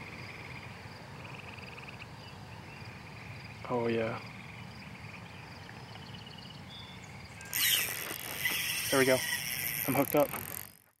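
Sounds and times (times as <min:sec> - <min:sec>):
faint insect chorus: 0:00.0 - 0:10.9
fishing reel drag buzzing: 0:07.3 - 0:11.0.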